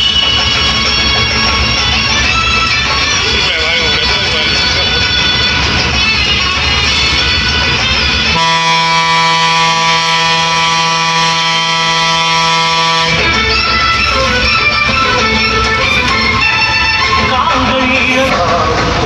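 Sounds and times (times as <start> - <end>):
background music: 0.0 - 19.0
air horn long note: 8.3 - 13.3.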